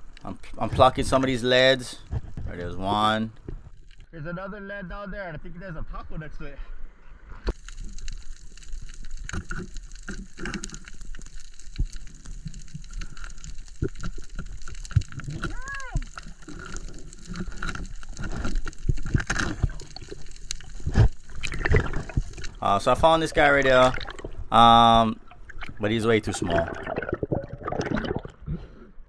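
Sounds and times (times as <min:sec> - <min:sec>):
steady water noise: 0:00.0 - 0:04.0, 0:07.5 - 0:29.0
sharp clicks and knocks underwater: 0:07.5 - 0:24.6, 0:25.2 - 0:25.8, 0:26.6 - 0:28.6.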